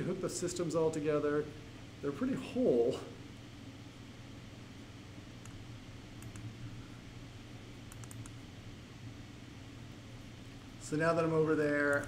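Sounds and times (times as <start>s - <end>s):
low room hum: 0.0s - 12.0s
mouse and keyboard clicks: 6.2s - 6.5s, 7.9s - 8.4s.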